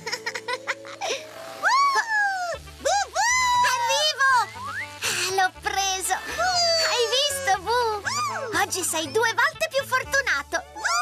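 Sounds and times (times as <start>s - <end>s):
children's background music: 0.1s - 11.0s.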